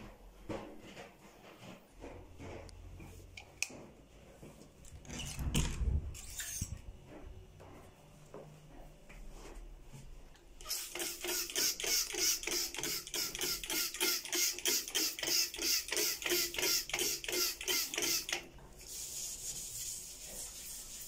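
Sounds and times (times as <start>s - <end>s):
spray bottle squirting: 10.6s - 18.4s
sponge scrubbing basin: 18.8s - 21.0s.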